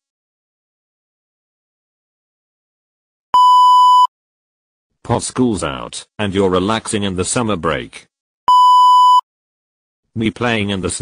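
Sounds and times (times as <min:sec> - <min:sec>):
electronic beep: 0:08.5 - 0:09.2.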